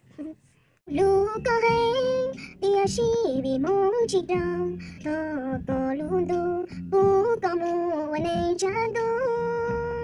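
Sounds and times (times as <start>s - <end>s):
woman singing: 0.9s - 10.0s.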